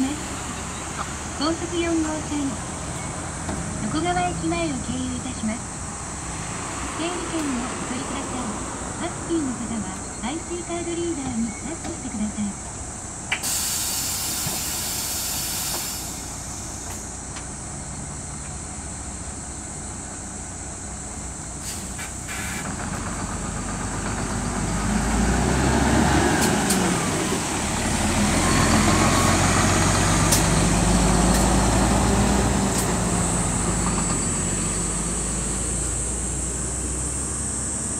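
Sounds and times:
bus engine: 0:00.0 - 0:37.9
air brakes hissing: 0:13.3 - 0:17.2, 0:21.6 - 0:22.7.

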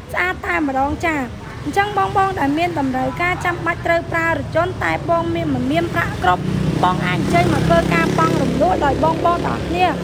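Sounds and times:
street traffic: 0:00.0 - 0:10.0
passing vehicle engine hum: 0:01.3 - 0:10.0.

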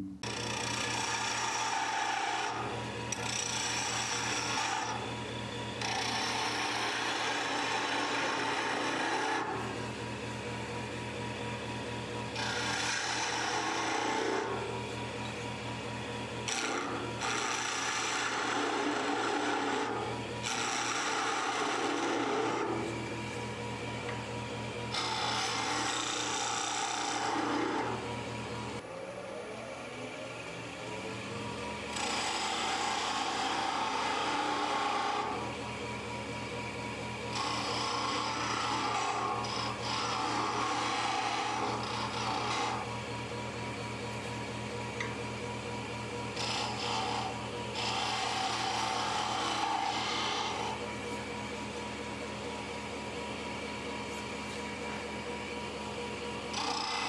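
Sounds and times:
wood lathe humming: 0:00.0 - 0:57.0
turning tool cutting wood: 0:00.2 - 0:28.9, 0:31.8 - 0:57.0.

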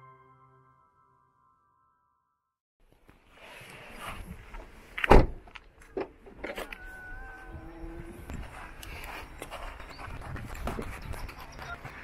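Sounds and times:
car door shutting thud: 0:05.1 - 0:05.4.

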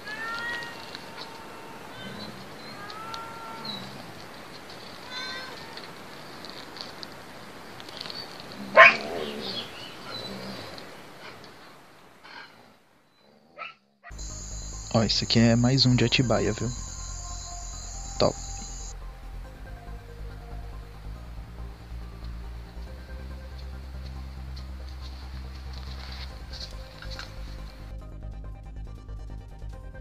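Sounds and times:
cat yowling: 0:00.0 - 0:04.1, 0:05.0 - 0:06.0.

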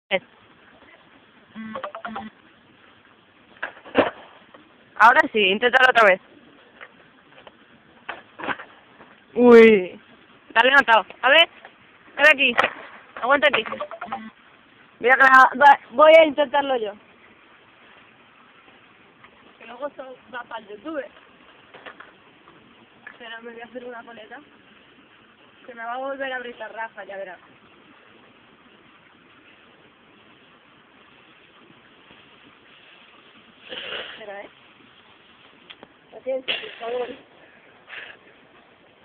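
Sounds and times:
faint steady background noise: 0:00.1 - 0:39.0
short vocal sounds: 0:01.5 - 0:02.4
skateboard knocking on stone: 0:12.4 - 0:13.9.

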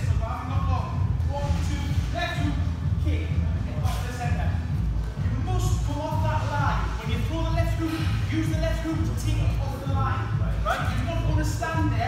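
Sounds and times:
background music with low bass: 0:00.0 - 0:12.0.

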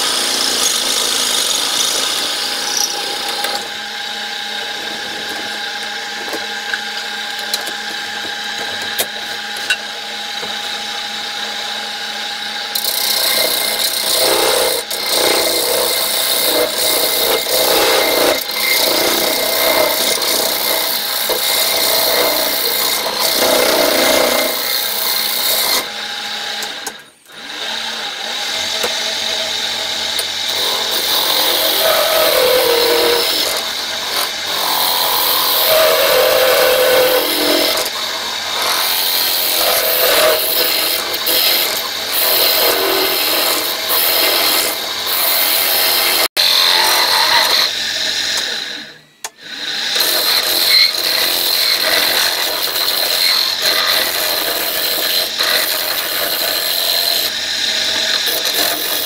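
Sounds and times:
gouge scraping wood on lathe: 0:30.6 - 0:37.9.

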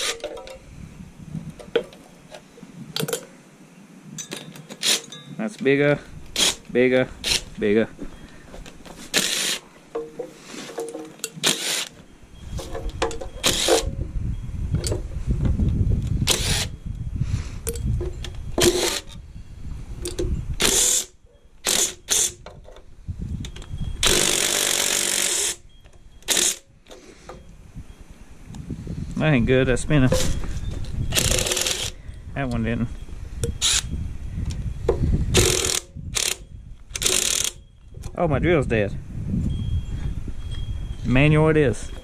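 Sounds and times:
wind rumble on microphone: 0:00.0 - 0:04.6, 0:12.2 - 0:21.0, 0:22.1 - 0:26.3, 0:27.4 - 0:42.0
cordless drill running: 0:09.1 - 0:09.6, 0:16.2 - 0:16.7, 0:24.0 - 0:25.6, 0:31.1 - 0:32.0.

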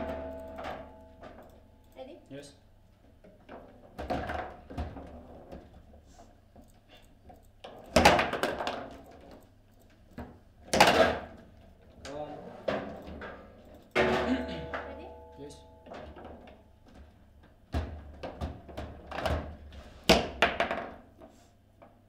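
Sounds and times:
steady ringing tone: 0:00.0 - 0:01.8, 0:14.3 - 0:16.0
table football ball and rods knocking: 0:20.1 - 0:21.2.

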